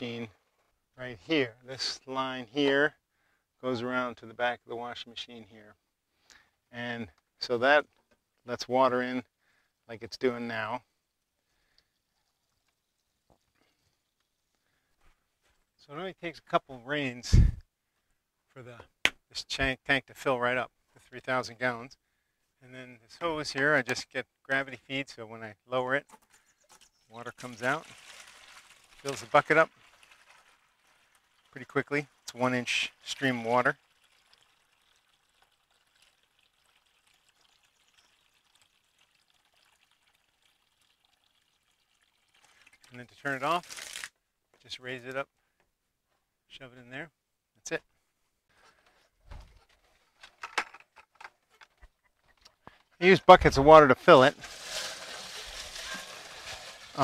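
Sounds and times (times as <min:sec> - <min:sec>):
water pouring into plastic bucket: 0:26.2 - 0:44.1, 0:54.2 - 0:57.0.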